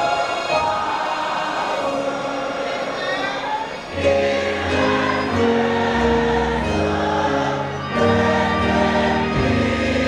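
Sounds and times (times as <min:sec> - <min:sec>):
gospel choir singing in harmony: 0:00.0 - 0:10.0.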